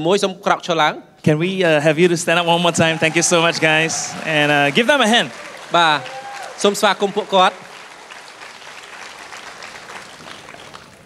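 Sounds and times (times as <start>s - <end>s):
audience applause: 2.6s - 11.0s.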